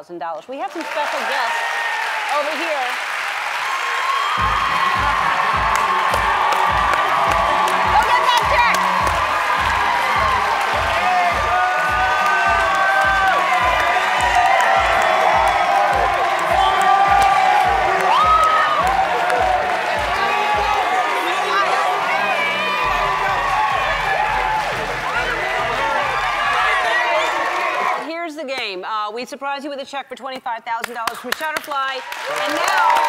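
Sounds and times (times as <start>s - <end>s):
crowd cheering and whooping: 0.9s - 28.0s, 32.1s - 33.0s
upbeat music with bass beat: 4.4s - 26.9s.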